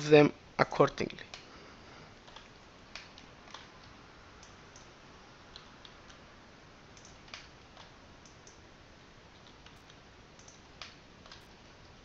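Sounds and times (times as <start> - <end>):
steady low hiss: 0.0 - 12.0
mouse and keyboard clicks: 2.2 - 4.9, 7.0 - 8.6, 9.4 - 11.5.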